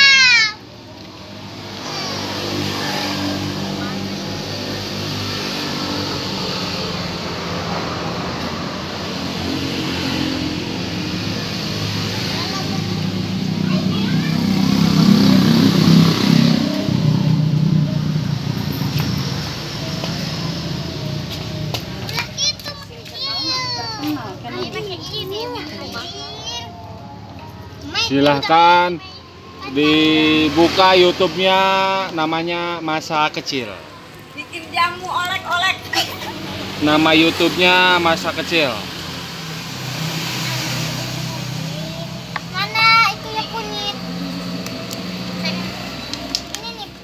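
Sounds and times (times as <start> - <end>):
children chattering: 0.0 - 30.7, 33.8 - 36.9, 38.8 - 47.0.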